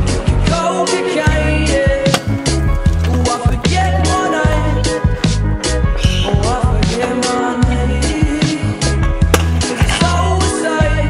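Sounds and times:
scooter wheels clattering on concrete: 2.0 - 5.4, 9.1 - 10.5.

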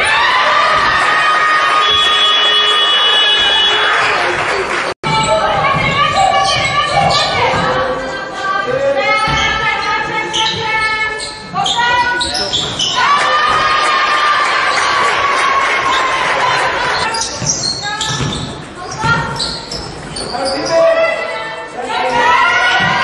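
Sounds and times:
basketball bouncing on court: 5.1 - 7.8, 17.2 - 20.3.

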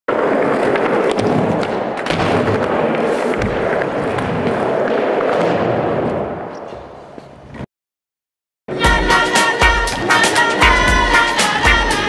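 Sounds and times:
skateboard wheels rolling on pavement: 0.1 - 7.6.

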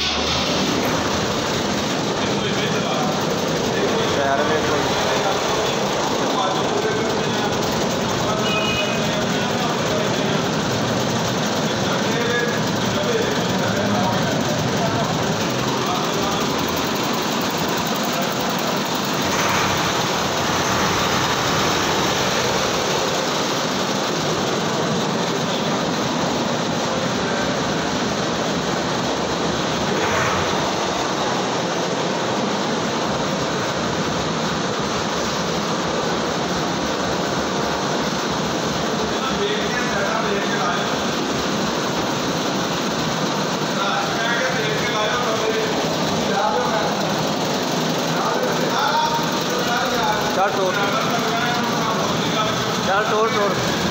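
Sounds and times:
engine running: 0.0 - 53.9.

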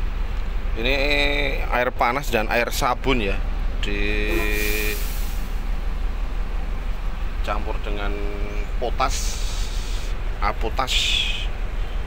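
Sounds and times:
idling bus engine rumble: 0.0 - 12.0.

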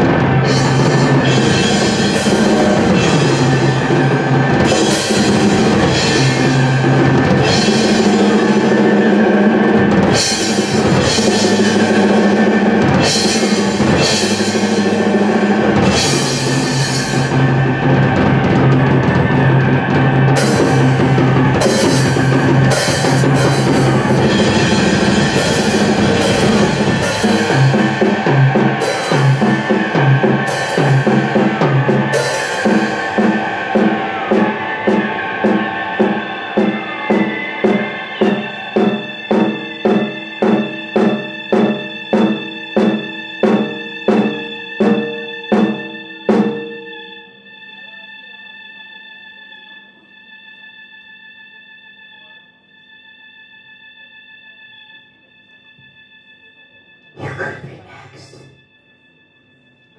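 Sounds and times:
cymbal crashes: 0.0 - 19.0, 20.4 - 47.1
drum kit played hard: 0.0 - 46.6, 57.2 - 58.5
steady low tone: 57.0 - 58.7.

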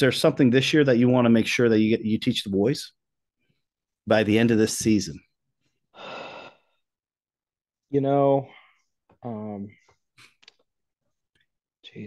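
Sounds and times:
man speaking: 4.0 - 5.3.

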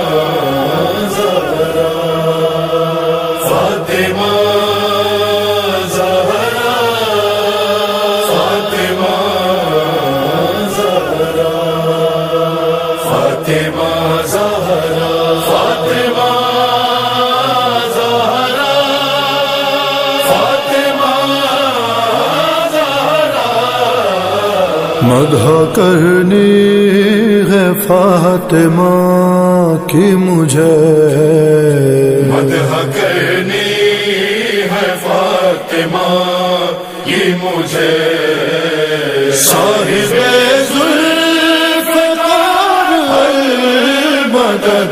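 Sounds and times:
devotional vocal chant: 0.0 - 44.9.

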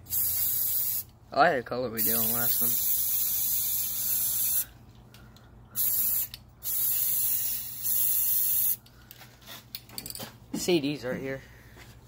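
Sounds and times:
spray paint can hissing: 0.1 - 1.1, 2.0 - 4.7, 5.8 - 8.8.

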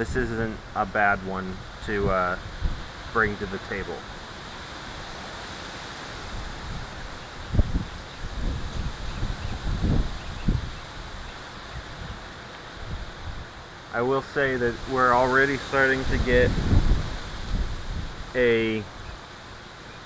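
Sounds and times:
wind buffeting microphone: 0.0 - 13.6, 14.6 - 19.2
outdoor background hiss: 0.0 - 20.0.

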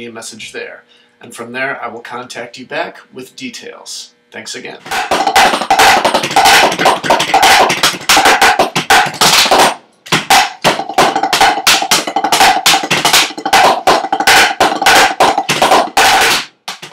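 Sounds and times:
drumsticks on practice pads: 4.9 - 16.9.

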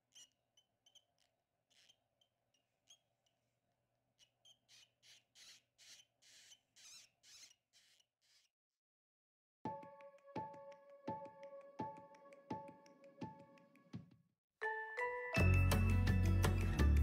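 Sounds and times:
hamster pups squeaking: 0.0 - 3.4, 4.2 - 8.5.

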